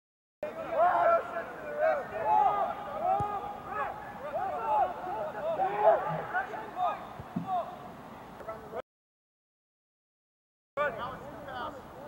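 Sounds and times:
distant people shouting: 0.4 - 7.9
short dull thud: 7.2 - 7.6.

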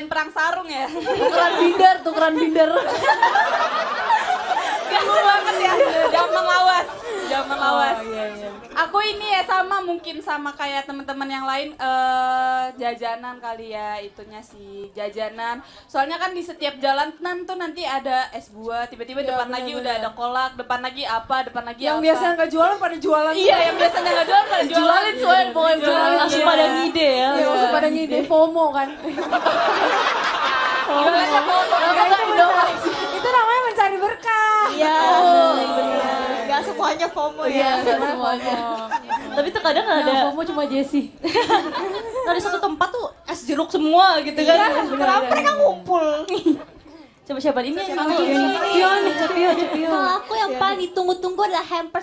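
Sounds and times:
young women talking over one another: 47.5 - 51.2.

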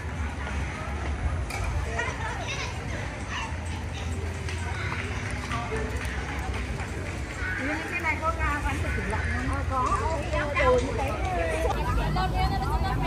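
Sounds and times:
people talking: 0.0 - 13.0.

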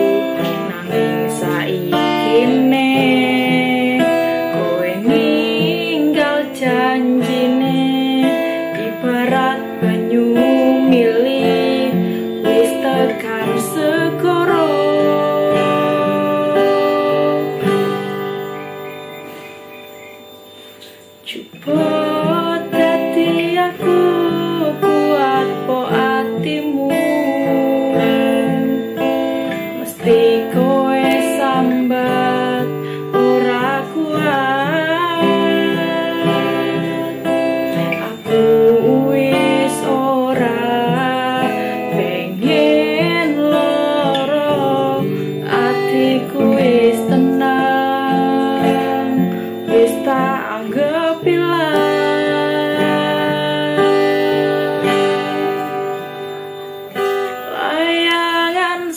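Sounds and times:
woman singing: 0.0 - 18.9, 21.1 - 58.9
strummed acoustic guitar: 0.0 - 58.9.

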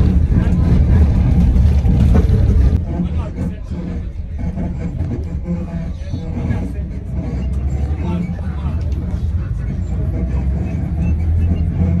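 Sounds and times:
vehicle driving low rumble: 0.0 - 12.0.

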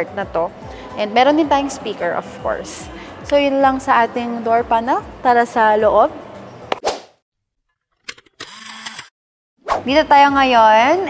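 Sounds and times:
brief swish: 6.7 - 7.2, 9.6 - 9.9.

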